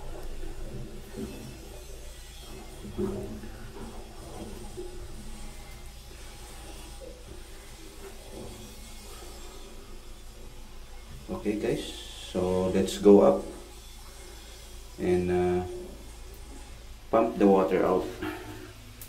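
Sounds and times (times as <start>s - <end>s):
steady low hum: 0.0s - 19.0s.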